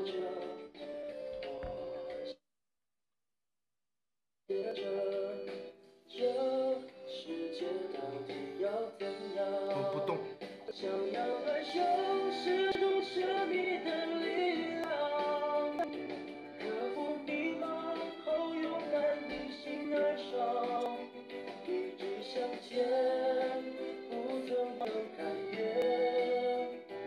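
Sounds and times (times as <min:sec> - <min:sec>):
pop song with vocals: 0:00.0 - 0:02.3, 0:04.5 - 0:27.0.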